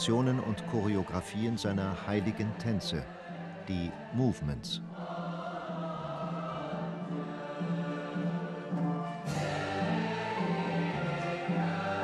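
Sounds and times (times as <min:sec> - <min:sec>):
choir singing long notes: 0:00.0 - 0:12.0.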